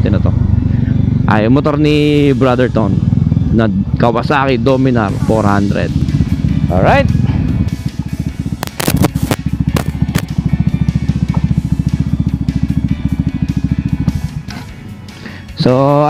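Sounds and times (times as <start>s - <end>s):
motorcycle engine idling: 0.0s - 16.0s
sharp clicks: 8.6s - 10.4s.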